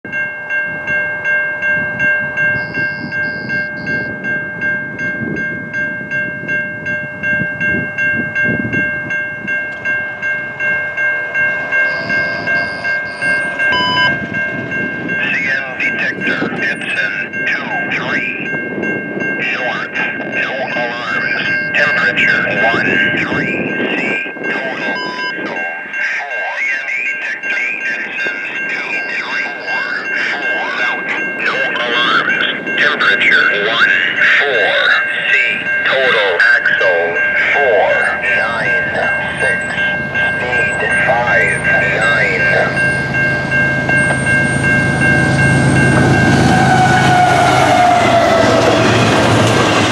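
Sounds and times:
railroad crossing bell ringing: 0:00.0 - 0:49.9
freight train low rumble: 0:00.1 - 0:49.9
person speaking: 0:15.2 - 0:18.4, 0:19.4 - 0:42.8.

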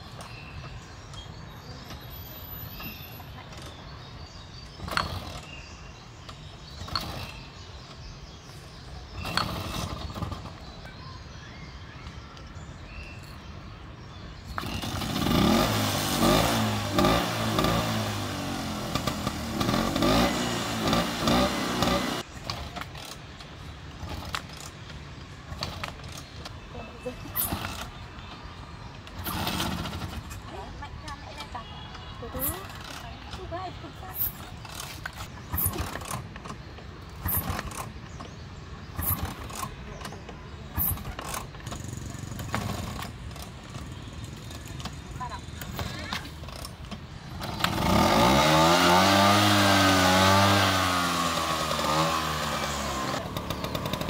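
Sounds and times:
scooter engine revving: 0:09.1 - 0:10.9, 0:14.4 - 0:23.3, 0:29.2 - 0:30.6, 0:31.7 - 0:44.3, 0:45.0 - 0:54.0.

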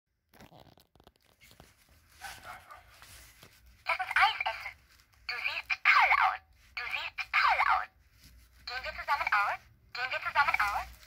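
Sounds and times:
faint rustling: 0:01.1 - 0:05.7, 0:08.0 - 0:11.0
doll voice through small speaker: 0:03.9 - 0:08.0, 0:08.6 - 0:11.0.

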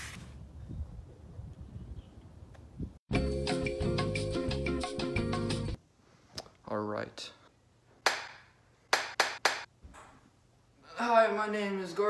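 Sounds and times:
sharp hand claps: 0:08.0 - 0:09.7.

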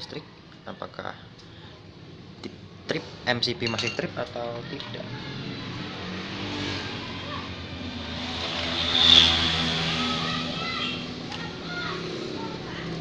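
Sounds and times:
passing vehicle engine: 0:05.0 - 0:13.0.

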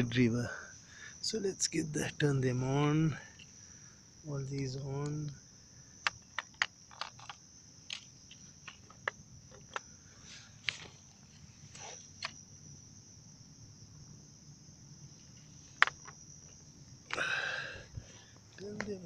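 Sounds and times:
crickets chirping: 0:00.0 - 0:19.0.

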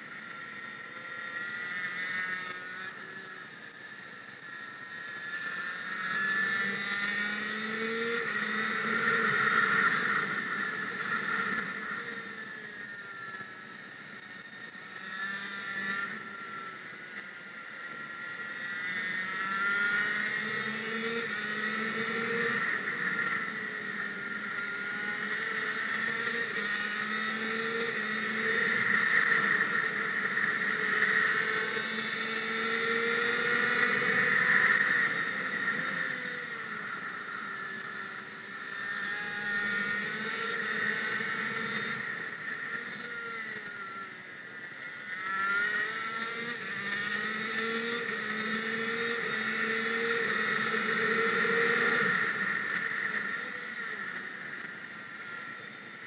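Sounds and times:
racing engine revving: 0:04.8 - 0:13.5, 0:18.0 - 0:44.1, 0:45.0 - 0:54.7.

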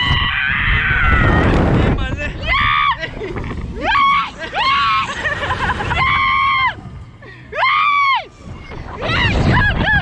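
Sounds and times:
men screaming: 0:00.0 - 0:01.6, 0:02.4 - 0:03.2, 0:03.8 - 0:06.8, 0:07.5 - 0:08.3.

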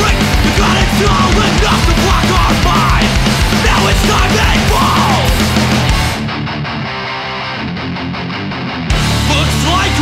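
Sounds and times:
punk band loud hit: 0:00.0 - 0:06.3.

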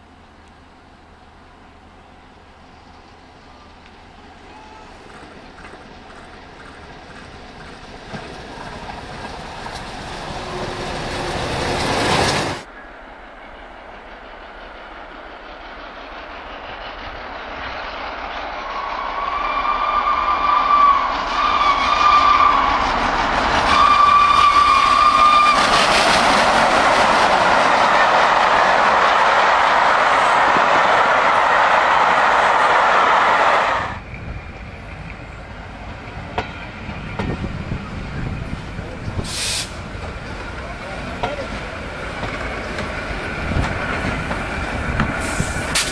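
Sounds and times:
steam locomotive approaching: 0:00.0 - 0:45.9
train wheels on rails: 0:00.0 - 0:45.9
train whistle blasts: 0:23.6 - 0:25.7.

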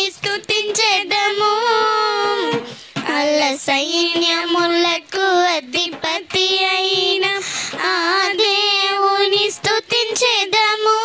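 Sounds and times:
girls singing worship song: 0:00.0 - 0:11.0.

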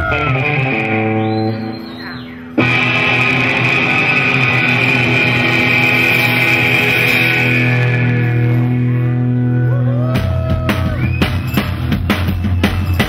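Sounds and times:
surf rock band playing: 0:00.0 - 0:13.0.

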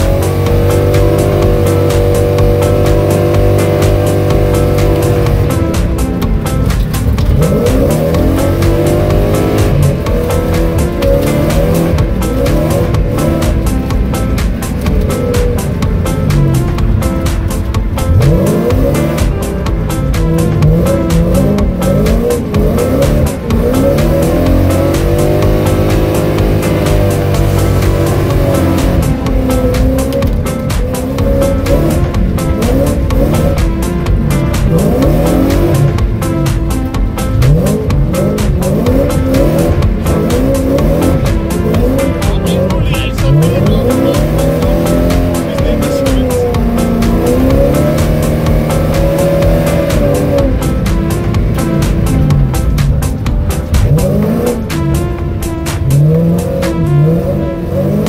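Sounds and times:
car engines revving: 0:00.0 - 0:58.0.

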